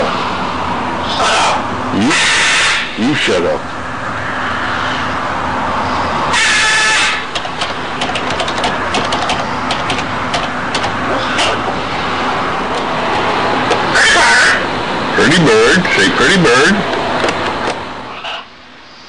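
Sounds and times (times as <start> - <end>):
low background hum: 0.0 - 19.0
parrot squawking: 1.1 - 2.9, 13.9 - 14.7
sharp clicks: 7.3 - 11.6.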